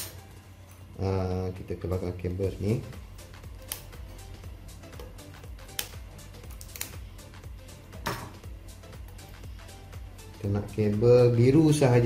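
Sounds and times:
quiet background music: 0.0s - 12.0s
pliers clicking and tapping: 3.6s - 4.0s, 4.9s - 7.0s.

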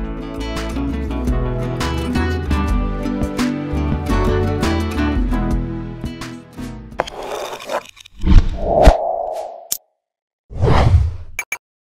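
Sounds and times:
whoosh sound effect: 8.2s - 9.8s.

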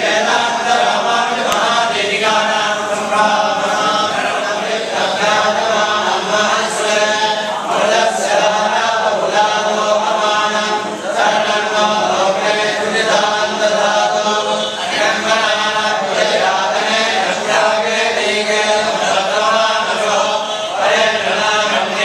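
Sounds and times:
men chanting together: 0.0s - 22.0s.

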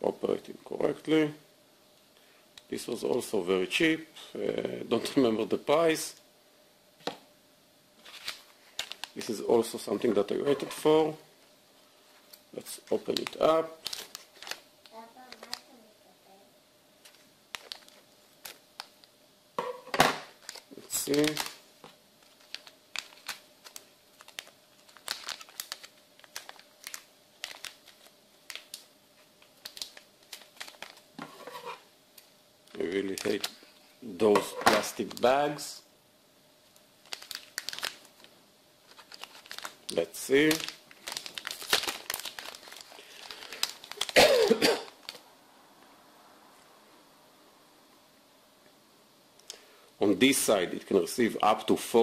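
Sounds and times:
plastic crinkling: 8.0s - 9.4s, 12.9s - 15.8s, 17.0s - 19.1s, 20.4s - 21.6s, 22.2s - 31.8s, 32.7s - 33.6s, 37.0s - 44.2s, 44.8s - 45.2s.

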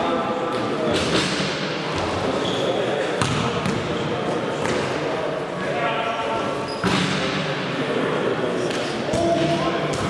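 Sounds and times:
shoe squeak: 2.4s - 2.8s, 6.6s - 7.0s.

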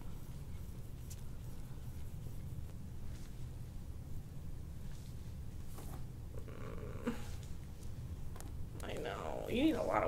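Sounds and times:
gloved hands rubbing: 0.0s - 3.6s.

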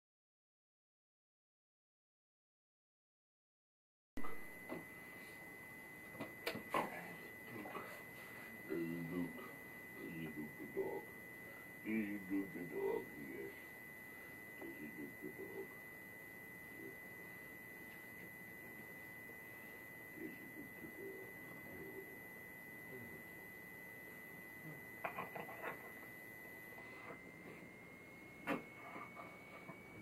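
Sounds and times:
steady high-pitched tone: 4.2s - 30.0s
soft low murmurs: 6.7s - 13.8s, 14.4s - 15.9s.

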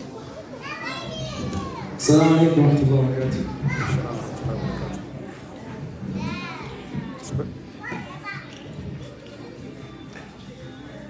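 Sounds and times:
low murmur of speech: 0.0s - 11.0s.

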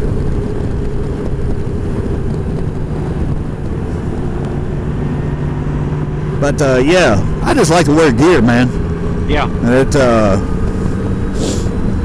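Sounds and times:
motorcycle engine hum: 0.0s - 12.0s
wind and road noise: 0.0s - 12.0s.

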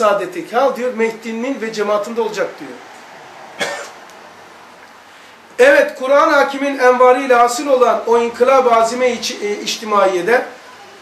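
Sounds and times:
person coughing: 3.6s - 4.0s.

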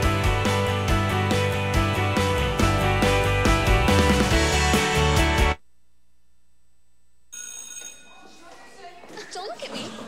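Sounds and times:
telephone ringing: 7.3s - 8.4s.

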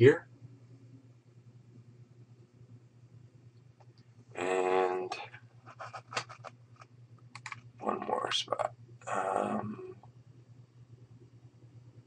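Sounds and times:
low electrical hum: 0.0s - 12.0s
person muttering: 4.4s - 5.0s, 9.1s - 9.9s
keyboard and mouse clicks: 5.8s - 7.7s.

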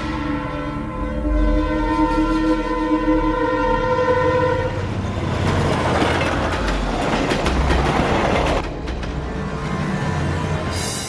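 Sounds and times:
train horn chord: 0.0s - 5.0s
train wheels clicking over rail joints: 5.4s - 9.4s.

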